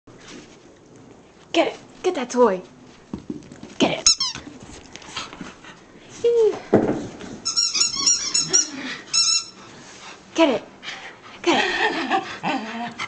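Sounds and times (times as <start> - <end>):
high-pitched toy squeaks: 4.1 - 4.4, 7.4 - 9.6
dog whining: 7.5 - 9.6
dog growling: 8.4 - 9.1.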